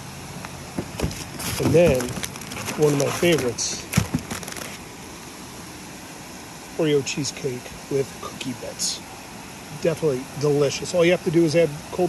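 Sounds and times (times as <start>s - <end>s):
plastic bags crinkling: 0.8s - 4.8s.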